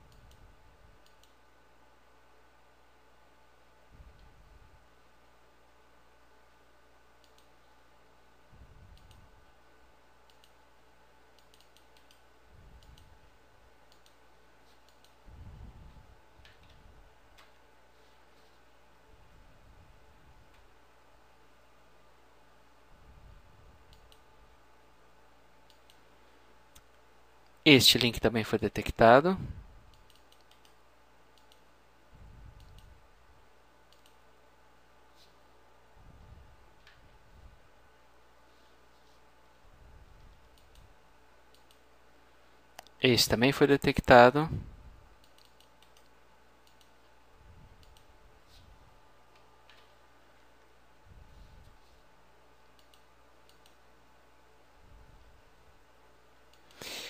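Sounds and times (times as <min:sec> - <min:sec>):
quiet low hum: 0:00.0 - 0:57.0
faint computer mouse clicks: 0:01.0 - 0:01.4, 0:07.2 - 0:07.5, 0:08.9 - 0:09.2, 0:10.2 - 0:10.6, 0:11.3 - 0:12.2, 0:12.8 - 0:13.1, 0:13.9 - 0:14.2, 0:23.9 - 0:24.2, 0:29.9 - 0:30.8, 0:31.4 - 0:31.7, 0:32.6 - 0:32.9, 0:33.9 - 0:34.2, 0:41.5 - 0:41.8, 0:45.2 - 0:47.0, 0:47.8 - 0:48.1, 0:52.7 - 0:53.8.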